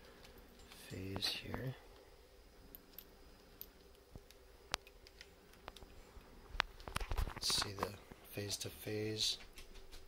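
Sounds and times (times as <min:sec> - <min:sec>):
test leads clicking and handling: 0:00.0 - 0:08.1
faint steady hum: 0:00.0 - 0:10.0.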